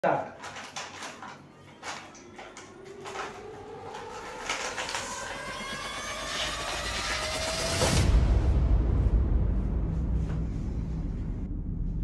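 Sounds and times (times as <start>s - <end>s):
foil pouch crinkling: 0.4s - 5.7s.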